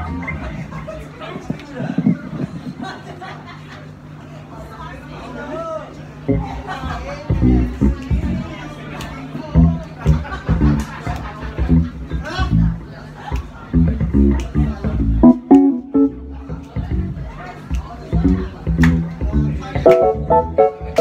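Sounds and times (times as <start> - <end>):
plucked bass guitar: 0.0 - 3.0, 6.3 - 8.6, 9.6 - 10.9, 11.6 - 12.9, 13.7 - 17.3, 18.1 - 21.0
drums: 0.0 - 3.4, 7.3 - 8.5, 9.6 - 21.0
piano chords: 15.2 - 16.6, 19.8 - 21.0.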